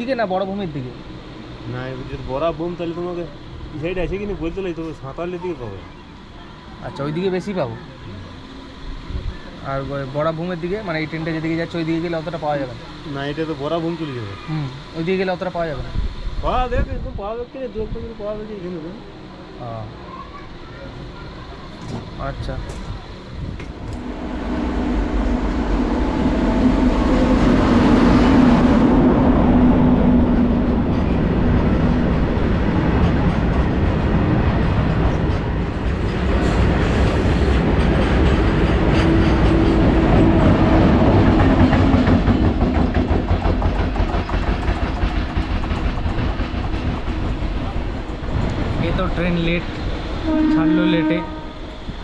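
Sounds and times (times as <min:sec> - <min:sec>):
freight train wheels rumbling: 0:00.0 - 0:52.0
train horn: 0:24.0 - 0:29.0, 0:50.2 - 0:51.9.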